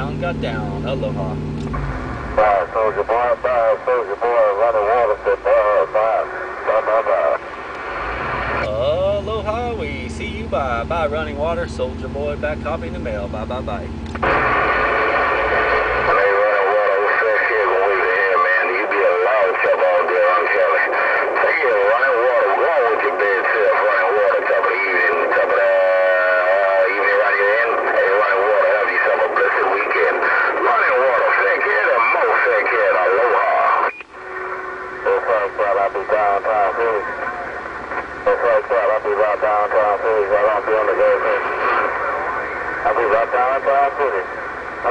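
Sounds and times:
distorted voices over radio: 0.0s - 44.9s
radio band hiss: 0.0s - 44.9s
short steady tone: 33.9s - 35.1s.

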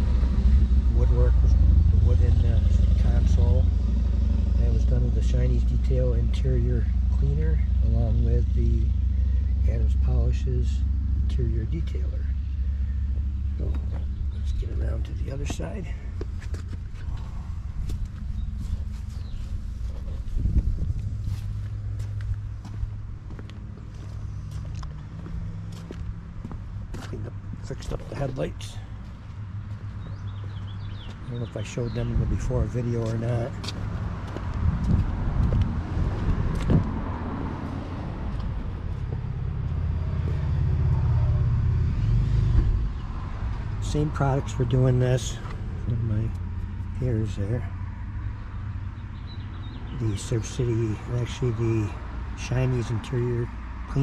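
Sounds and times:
low outdoor rumble: 0.0s - 54.0s
steady low hum: 0.0s - 54.0s
footsteps on asphalt: 13.2s - 31.3s, 32.8s - 41.0s.

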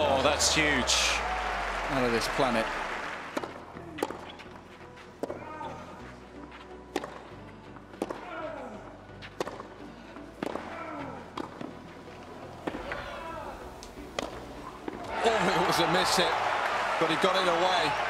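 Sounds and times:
racket striking tennis ball: 3.3s - 4.4s, 6.9s - 7.3s, 8.0s - 8.3s, 9.3s - 9.7s, 10.4s - 10.8s, 11.4s - 11.7s, 14.1s - 14.4s.

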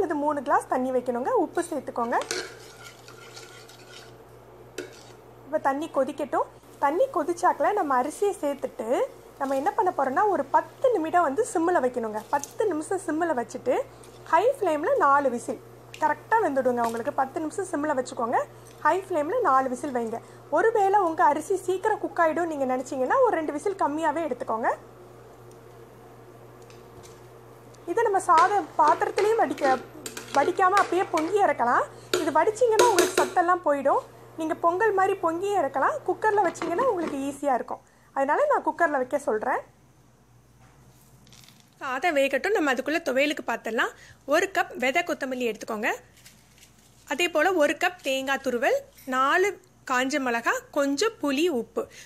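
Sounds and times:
metal spoon stirring and clinking in pot: 2.0s - 4.2s, 4.8s - 5.2s, 28.4s - 33.4s
ladle scraping and swishing in pot: 2.2s - 5.3s
person talking: 27.9s - 39.5s
ladle knocking on pot: 32.1s - 33.4s.

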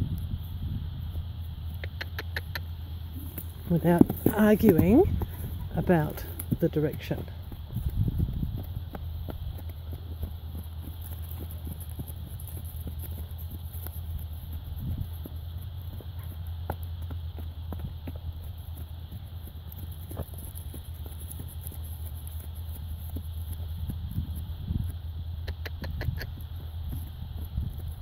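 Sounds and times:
horse hoofbeats on grass and dirt: 0.0s - 28.0s
steady low hum: 0.0s - 28.0s.

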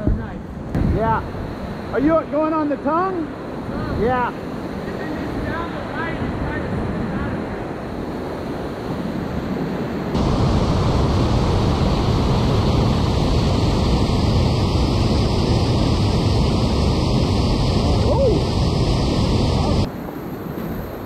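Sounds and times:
whitewater rapid roaring: 1.9s - 20.4s.

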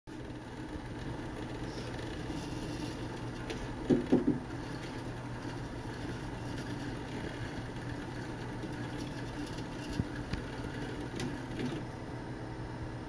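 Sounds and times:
small motor humming: 0.1s - 12.1s.

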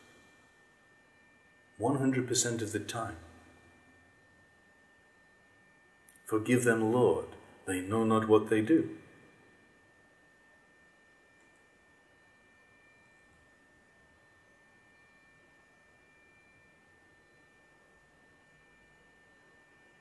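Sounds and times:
faint recording hiss: 0.0s - 20.0s.

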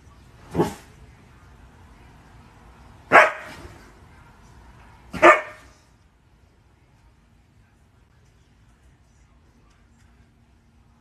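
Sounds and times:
dog barking: 3.1s - 3.7s, 5.1s - 5.8s.

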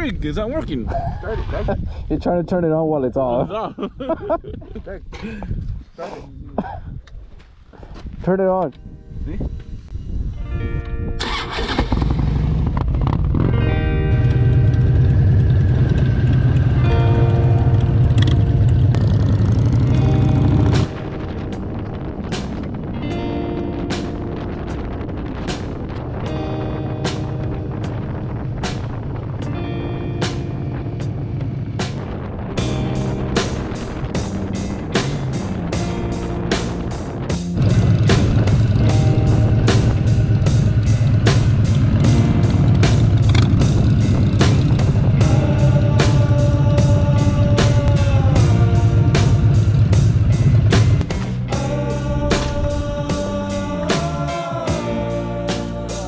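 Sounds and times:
motorcycle engine rumbling: 11.2s - 55.1s
background music: 13.6s - 56.0s
steady music beat: 32.0s - 56.0s.

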